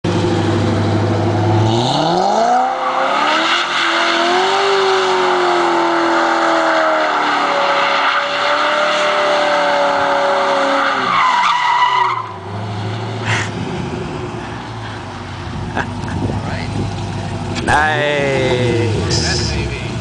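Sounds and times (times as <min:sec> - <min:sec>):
car engine revving: 0:00.1 - 0:20.0.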